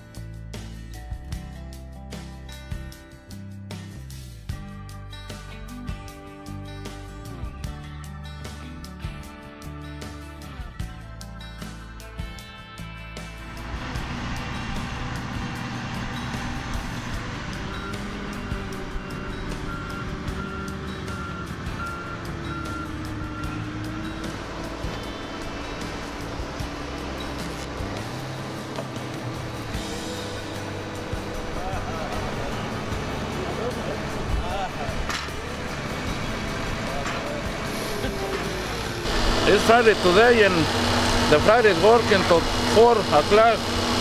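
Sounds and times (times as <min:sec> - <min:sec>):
music playing: 0:00.0 - 0:44.0
heavy truck engine running: 0:13.1 - 0:44.0
reversing alarm beeping: 0:17.6 - 0:25.9, 0:39.0 - 0:43.8.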